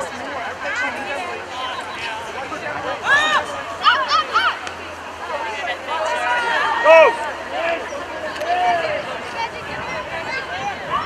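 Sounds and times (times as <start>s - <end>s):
crowd chatter: 0.0s - 11.0s
people shouting encouragement: 0.7s - 11.0s.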